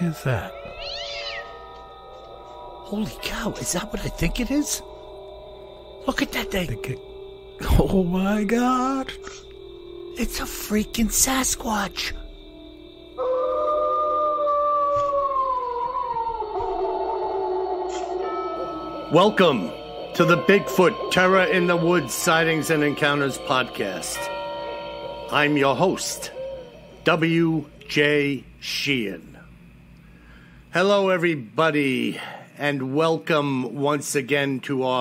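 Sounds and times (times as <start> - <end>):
long howl sliding down in pitch: 0.0 - 6.1, 13.0 - 27.6
background music drone: 0.0 - 28.5
high animal cry: 0.4 - 1.9.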